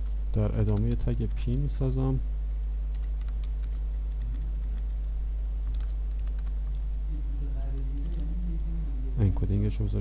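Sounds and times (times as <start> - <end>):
computer keyboard typing: 0.0 - 1.7, 2.9 - 6.9, 7.8 - 8.4
low electrical hum: 0.0 - 10.0.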